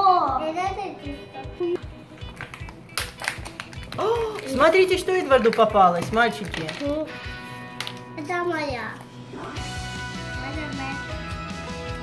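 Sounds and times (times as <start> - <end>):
background music with steady beat: 0.0 - 12.0
plastic seal crackling: 2.2 - 7.1.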